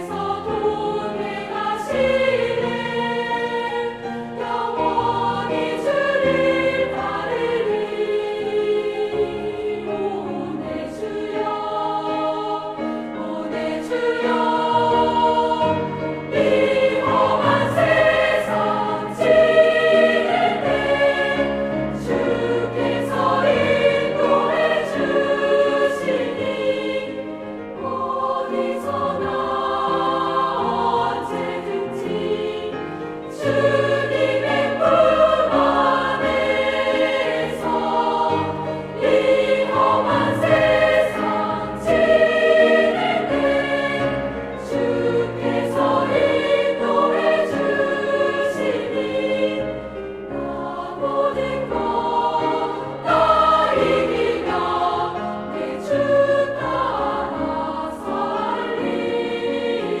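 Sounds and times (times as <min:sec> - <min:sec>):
girls' choir singing a hymn: 0:00.0 - 1:00.0
piano accompaniment: 0:00.0 - 1:00.0.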